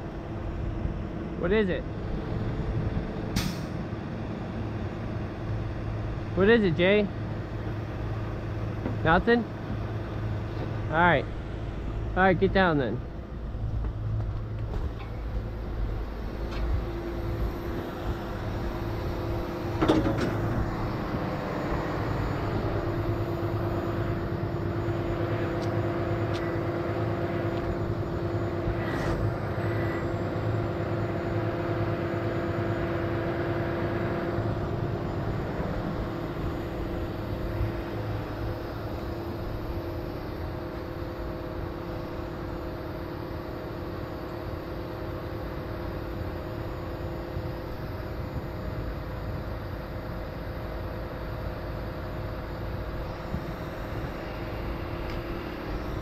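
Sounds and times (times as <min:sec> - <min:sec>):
diesel engine running: 0:00.0 - 0:56.0
hydraulic whine: 0:02.0 - 0:56.0.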